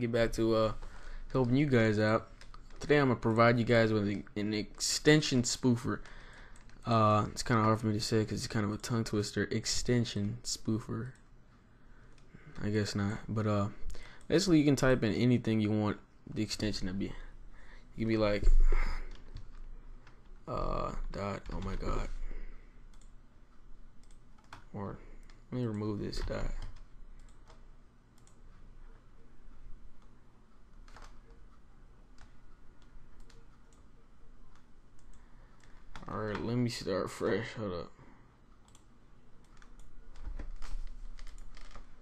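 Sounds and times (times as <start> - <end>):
faint room noise: 0.0 - 42.0
computer mouse click: 22.9 - 23.2, 24.0 - 25.8, 26.4 - 27.6, 28.2 - 28.4, 32.2 - 33.9, 34.5 - 36.4, 38.6 - 41.5
keyboard clicking: 30.7 - 31.4, 32.2 - 33.9.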